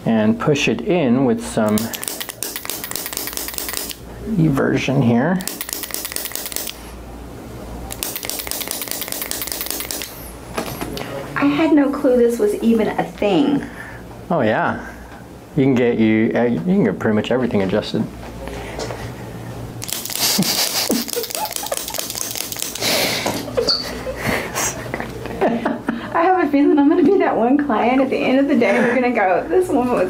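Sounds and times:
hands rubbing bare foot clicks: 0:19.8 - 0:23.4
brief rising squeaks: 0:23.6 - 0:24.0.

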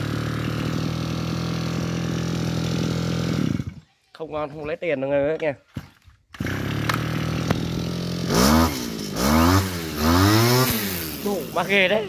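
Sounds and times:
brush cutter engine revving: 0:00.0 - 0:03.9, 0:06.3 - 0:12.0.

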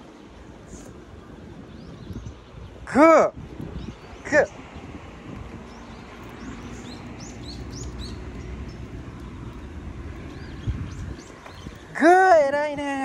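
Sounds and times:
small birds chirping: 0:00.0 - 0:12.7
distant traffic rumble: 0:00.0 - 0:13.0.

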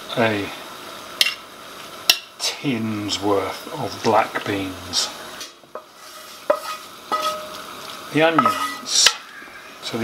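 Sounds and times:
food sizzling and stirring: 0:00.0 - 0:10.0
frying pan knocking against bowl: 0:06.5 - 0:07.5, 0:08.3 - 0:09.2.

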